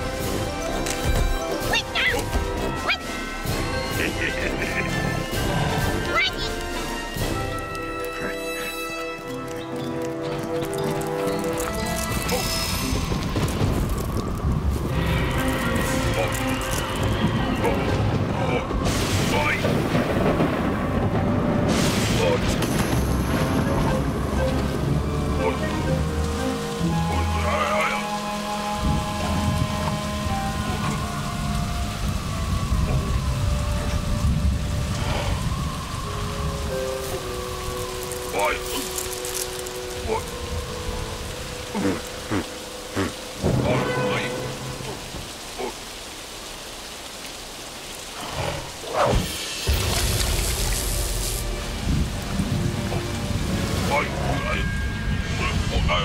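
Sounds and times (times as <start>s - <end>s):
sparse musical score: 0.0s - 46.8s, 47.8s - 56.0s
heavy rain: 0.0s - 56.0s
low thunder rumbles: 12.9s - 16.1s, 17.0s - 25.3s, 28.8s - 38.0s, 43.3s - 45.4s, 48.4s - 53.9s.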